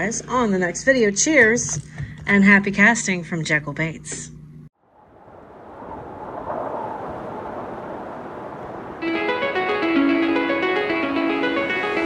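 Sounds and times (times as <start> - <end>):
wind on microphone: 4.8 - 9.8
rushing wind and water: 4.8 - 10.9.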